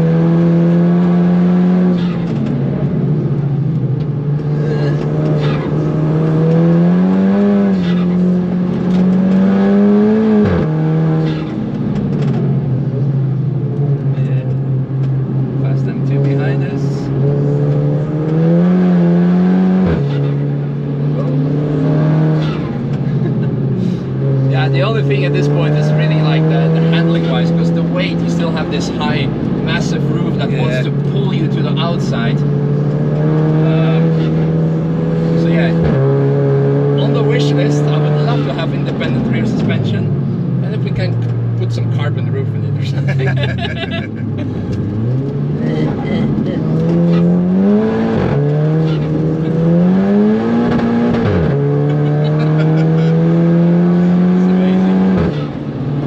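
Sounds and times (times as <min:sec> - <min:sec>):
turbocharged car engine accelerating: 0:00.0 - 0:56.0.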